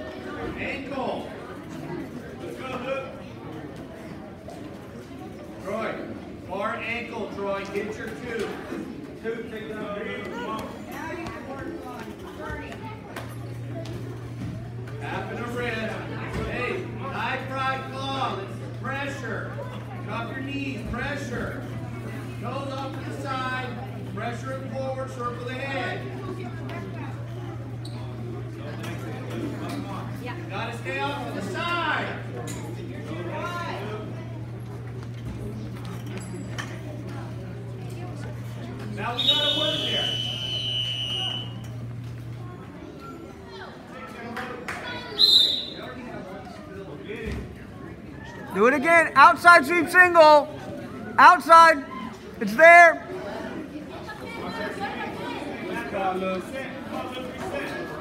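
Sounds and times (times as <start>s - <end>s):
people talking and calling out: 0.0s - 58.0s
steady low hum: 12.5s - 42.8s
scoreboard buzzer: 39.1s - 41.7s.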